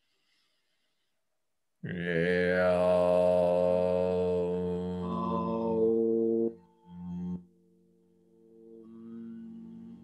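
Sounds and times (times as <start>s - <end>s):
voice chanting om: 1.8s - 7.1s
hummed tone: 2.4s - 10.0s.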